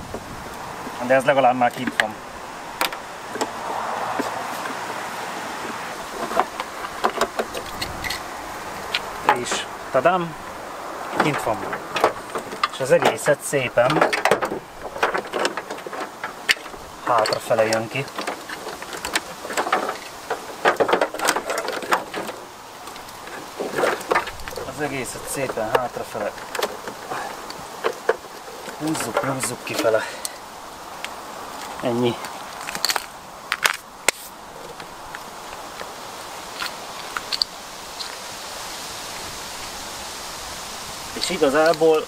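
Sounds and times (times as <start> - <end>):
rustling scraping: 0.0 - 42.0.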